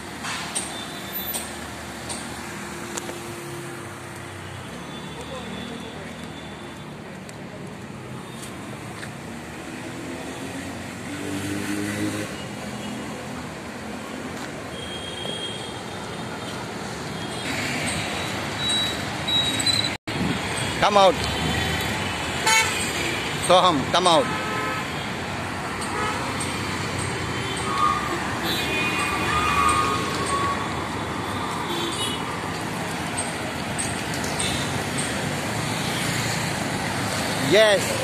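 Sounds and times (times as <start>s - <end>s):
vehicle engines and tyres passing: 0.0s - 38.0s.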